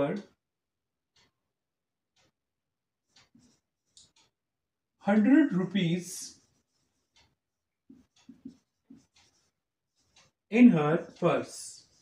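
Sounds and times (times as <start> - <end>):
marker squeaking on whiteboard: 3.0 - 4.0, 6.3 - 11.2.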